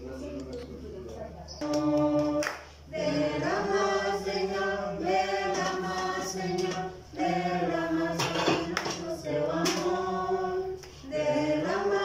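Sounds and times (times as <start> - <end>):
voices singing a cappella: 1.5 - 12.0.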